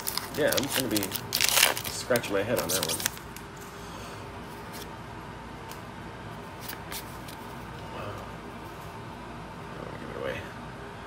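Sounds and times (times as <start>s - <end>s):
handling trading cards: 0.0s - 3.8s, 6.5s - 8.2s
steady background noise: 0.0s - 11.0s.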